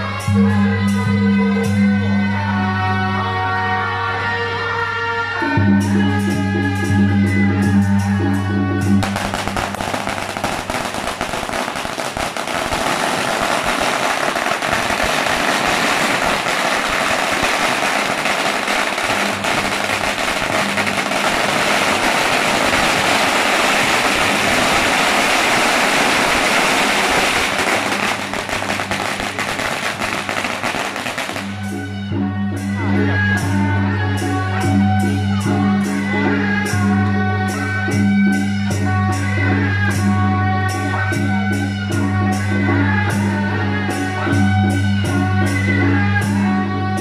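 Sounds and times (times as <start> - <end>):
music: 0.0 - 47.0
firecrackers crackling: 9.0 - 31.9.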